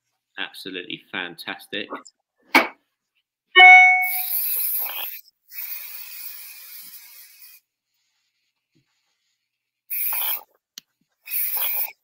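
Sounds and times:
brief ringing tone: 3.6s - 4.3s
aerosol can spraying: 4.1s - 7.6s, 9.9s - 10.5s, 11.3s - 11.9s.

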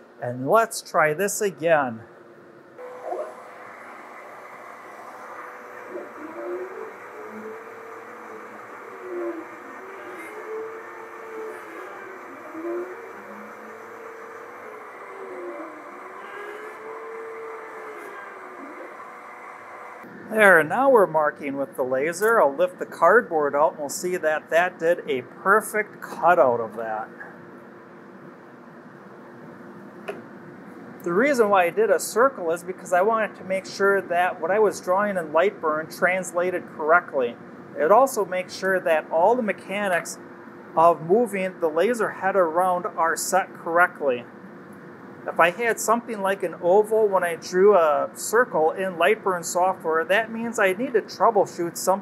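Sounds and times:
exhaust fan rushing: 2.6s - 52.0s
stepper motors whining: 2.8s - 20.9s.

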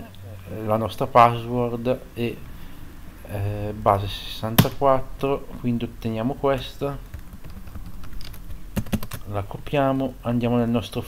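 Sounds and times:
laptop keyboard keys clicking: 7.1s - 9.3s.

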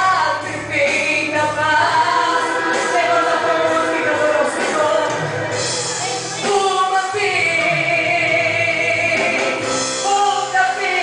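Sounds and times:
backing track with choir voices: 0.0s - 11.0s
woman singing into microphone: 0.0s - 11.0s.

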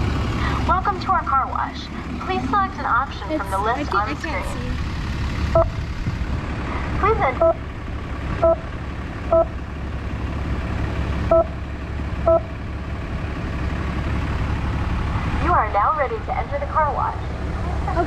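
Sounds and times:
car engine idling: 0.0s - 18.0s
short electronic beeps: 5.6s - 5.8s, 7.4s - 7.6s, 8.4s - 8.7s, 9.3s - 9.6s, 11.3s - 11.6s, 12.3s - 12.5s.

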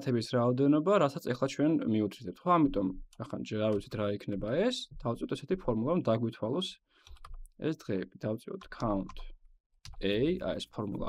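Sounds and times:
person narrating: 0.0s - 6.7s, 10.0s - 11.0s
keyboard clicks: 3.1s - 4.6s, 7.0s - 7.5s.

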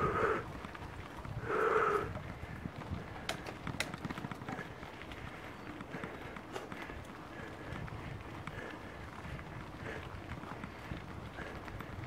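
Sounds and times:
crunching on dirt trail: 0.0s - 12.0s.

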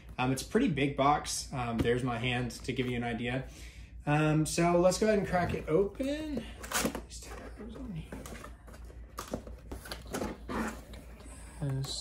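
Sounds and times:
cardboard scraping and rustling: 5.2s - 11.1s.

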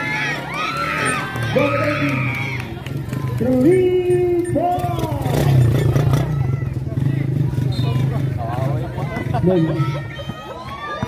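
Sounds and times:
spectators' voices and shouts: 0.0s - 11.0s.

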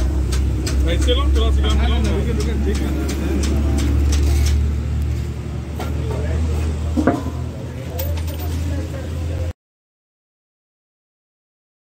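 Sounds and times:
low engine drone: 0.0s - 8.0s.

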